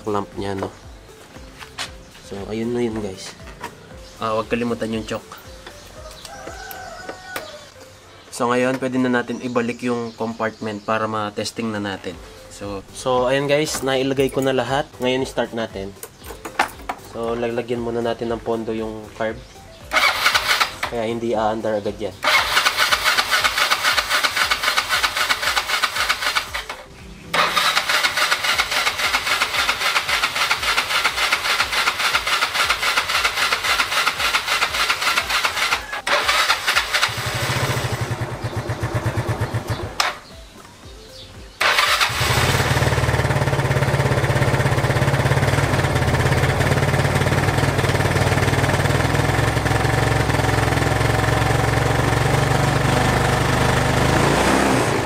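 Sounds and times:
scooter engine idling: 0:19.8 - 0:21.2, 0:22.2 - 0:40.3, 0:41.6 - 0:55.0
scooter engine cranking: 0:19.9 - 0:21.2, 0:22.2 - 0:40.3, 0:41.6 - 0:55.0.

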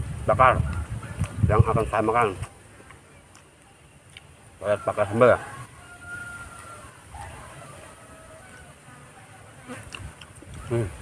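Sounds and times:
faint buzzing of flying insects: 0:00.0 - 0:11.0.

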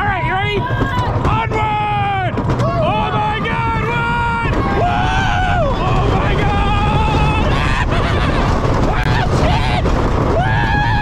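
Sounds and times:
roller coaster train on track: 0:00.0 - 0:11.0
wind rumble: 0:00.0 - 0:11.0
riders screaming: 0:01.6 - 0:11.0.

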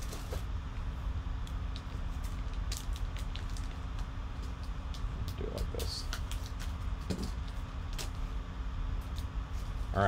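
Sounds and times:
steady low hum: 0:00.0 - 0:10.0
foil crinkling: 0:01.7 - 0:08.2.

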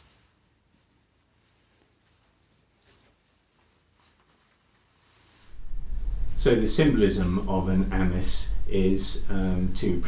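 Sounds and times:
soft cloth rustle: 0:00.0 - 0:06.9.

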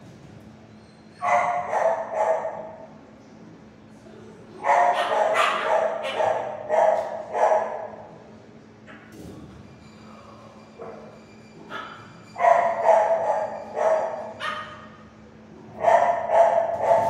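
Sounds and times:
dog barking: 0:01.2 - 0:02.8, 0:04.6 - 0:08.0, 0:10.8 - 0:15.1, 0:15.7 - 0:17.0.

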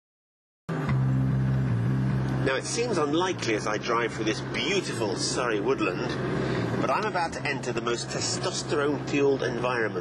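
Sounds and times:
car engine running: 0:00.7 - 0:10.0.

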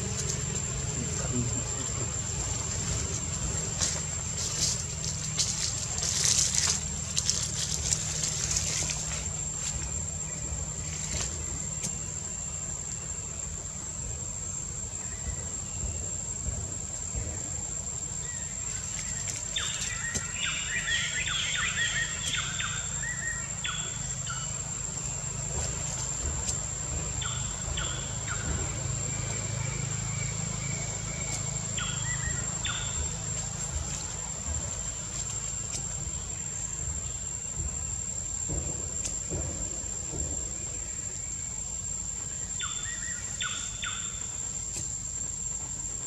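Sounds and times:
birds chirping: 0:00.0 - 0:46.0
high-pitched insect drone: 0:00.0 - 0:46.0
low background rumble: 0:00.0 - 0:46.0.

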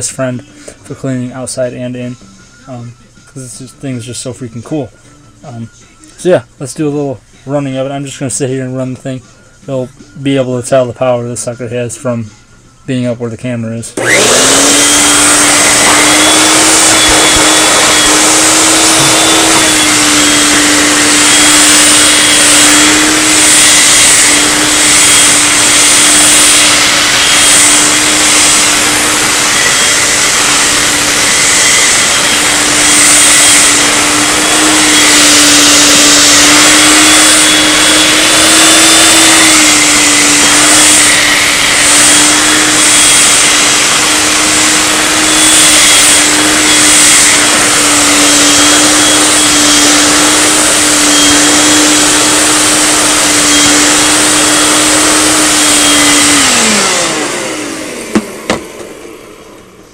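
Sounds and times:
hand vacuum running: 0:14.0 - 0:59.9.

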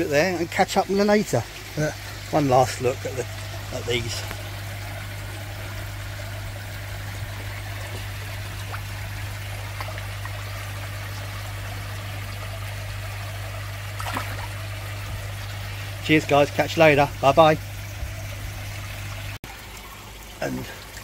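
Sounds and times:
steady low hum: 0:00.0 - 0:19.4
water trickling: 0:00.0 - 0:21.0.

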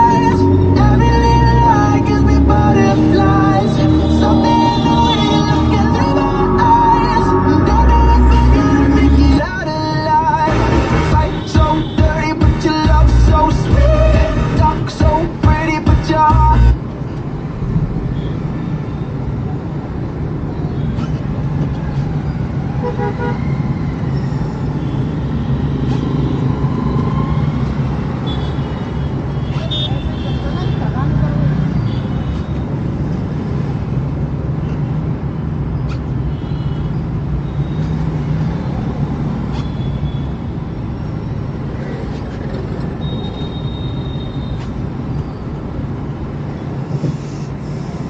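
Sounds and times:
car engine and road hum: 0:00.0 - 0:18.3
car horn toots: 0:03.0 - 0:06.2, 0:11.0 - 0:13.6.

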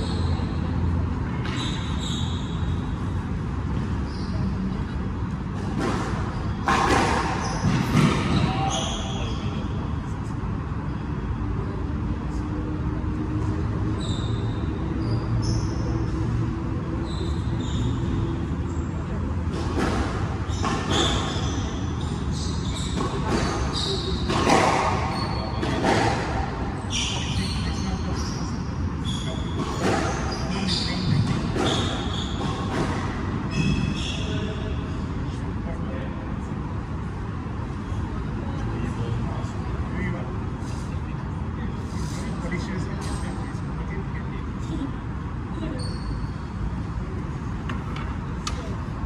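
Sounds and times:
faint indistinct voices: 0:03.9 - 0:49.0.

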